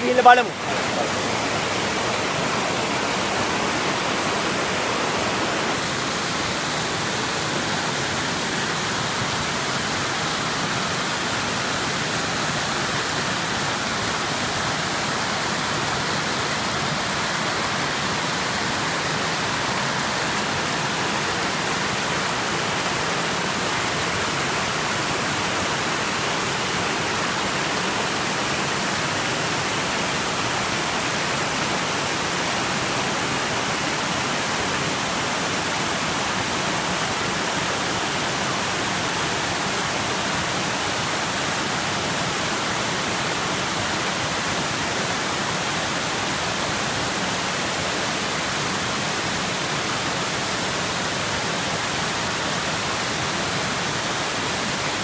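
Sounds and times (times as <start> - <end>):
waterfall rushing: 0.0 - 55.0.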